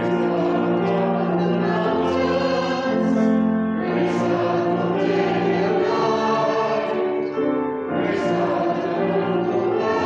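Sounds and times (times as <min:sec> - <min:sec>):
church choir singing: 0:00.0 - 0:10.0.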